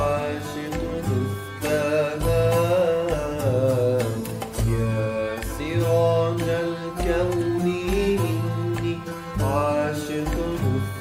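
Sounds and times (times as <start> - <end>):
man singing ornamented melody: 0.0 - 11.0.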